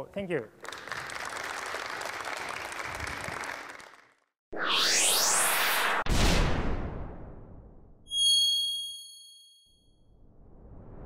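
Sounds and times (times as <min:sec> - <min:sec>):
whoosh: 0:04.5 - 0:07.9, 0:10.2 - 0:11.0
bright electronic chime: 0:08.1 - 0:09.9.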